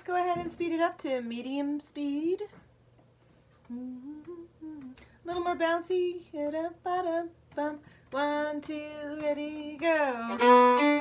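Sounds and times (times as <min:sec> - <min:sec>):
woman humming: 0:03.7 - 0:05.0.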